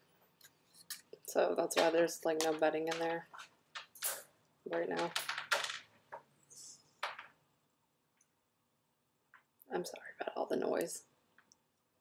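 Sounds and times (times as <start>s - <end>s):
clattering clicks and rattles: 1.7s - 6.3s.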